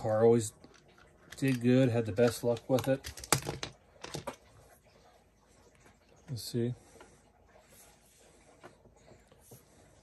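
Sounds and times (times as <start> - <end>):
plastic parts clicking and knocking: 0.5 - 4.5.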